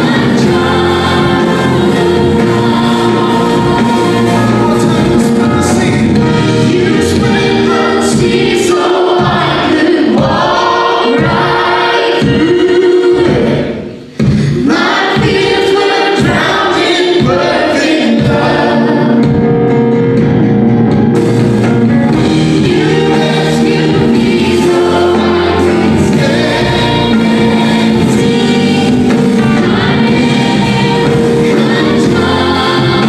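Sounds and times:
bass guitar: 0:00.0 - 0:08.5, 0:19.2 - 0:33.0
guitar: 0:00.0 - 0:09.5, 0:18.2 - 0:33.0
voices singing worship song: 0:00.0 - 0:19.7, 0:22.1 - 0:33.0
keyboard: 0:00.0 - 0:33.0.

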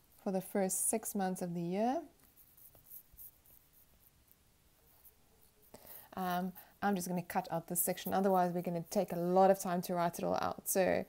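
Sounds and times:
stylus scratching on tablet screen: 0:00.0 - 0:11.0.

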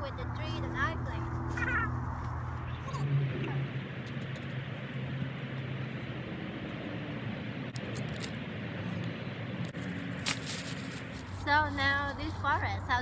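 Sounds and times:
distant traffic hum: 0:00.0 - 0:13.0
hands rustling in soil: 0:09.7 - 0:13.0.

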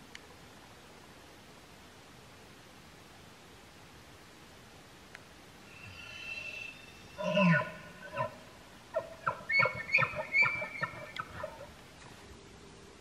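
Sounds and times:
elk bugling: 0:05.7 - 0:11.8.

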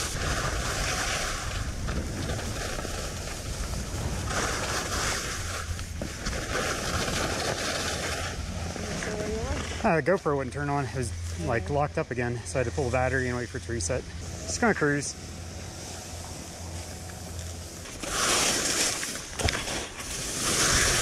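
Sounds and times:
wind on camera microphone: 0:00.0 - 0:07.3
skis hissing over snow: 0:00.0 - 0:10.0, 0:12.4 - 0:21.0
person speaking: 0:11.0 - 0:15.2.

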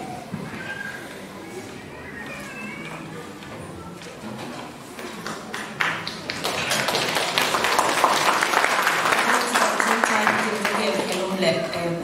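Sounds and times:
audience applauding: 0:05.2 - 0:11.4.

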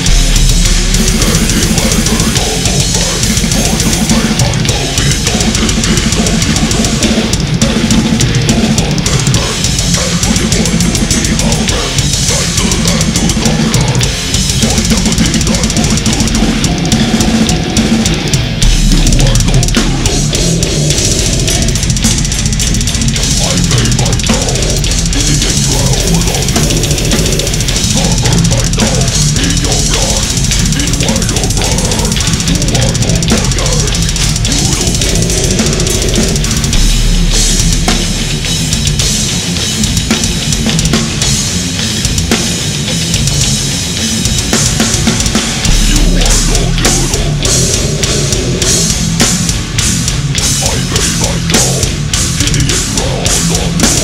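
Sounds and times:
death metal band playing: 0:00.0 - 0:54.0
fast metal drumming: 0:00.0 - 0:54.0.

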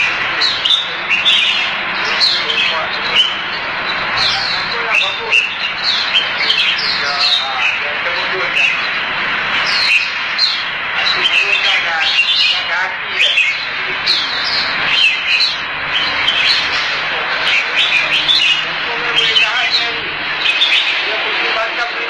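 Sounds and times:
birds chirping and whistling: 0:00.0 - 0:22.0
murmur of voices: 0:00.0 - 0:22.0.

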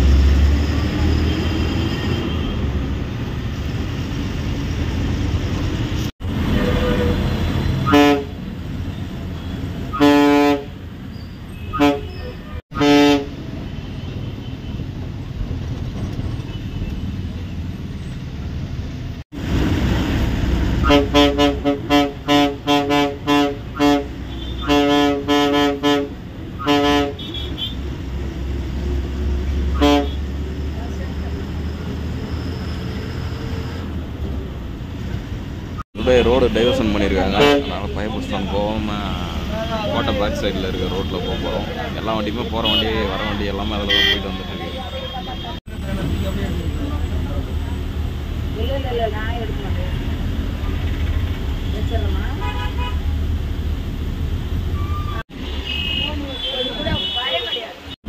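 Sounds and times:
diesel engine: 0:00.0 - 0:55.7
road noise: 0:00.0 - 0:58.0
bus horn blasts: 0:06.6 - 0:08.4, 0:09.4 - 0:10.8, 0:11.6 - 0:14.3, 0:20.8 - 0:27.8, 0:29.7 - 0:30.4, 0:36.2 - 0:38.0, 0:42.6 - 0:45.6, 0:51.6 - 0:53.0.

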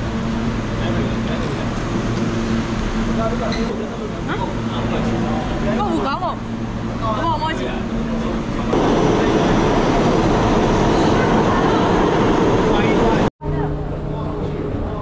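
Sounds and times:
steady low hum: 0:00.0 - 0:15.0
subway train rumbling on track: 0:00.0 - 0:15.0
voices: 0:03.1 - 0:15.0.

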